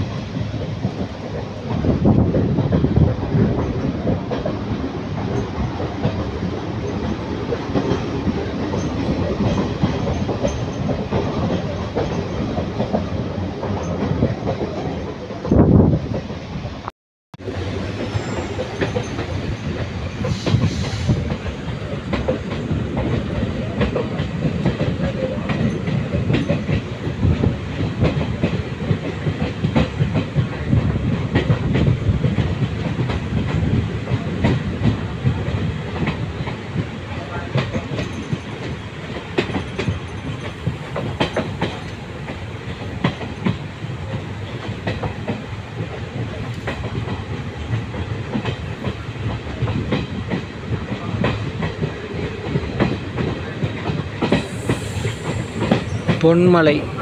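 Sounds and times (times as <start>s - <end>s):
train rumbling along track: 0.0s - 57.0s
wheels clicking over rail joints: 18.0s - 57.0s.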